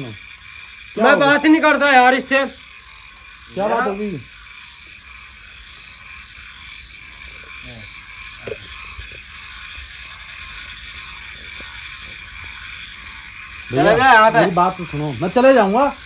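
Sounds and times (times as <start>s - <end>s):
frogs trilling: 0.0s - 16.0s.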